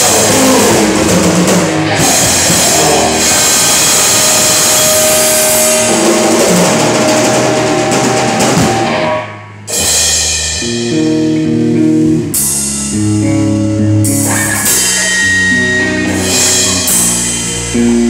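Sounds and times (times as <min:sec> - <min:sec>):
rock band playing live: 0:00.0 - 0:18.0.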